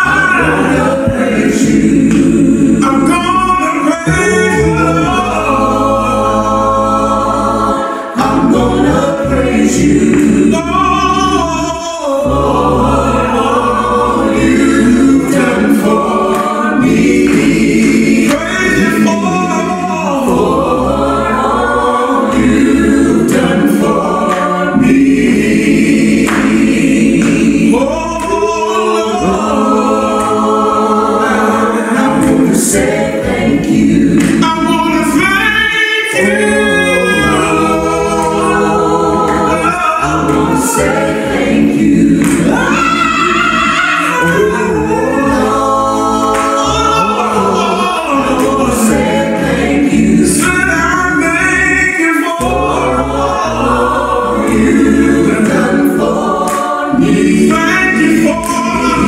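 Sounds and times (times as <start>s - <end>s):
choir singing a cappella: 0.0s - 59.0s.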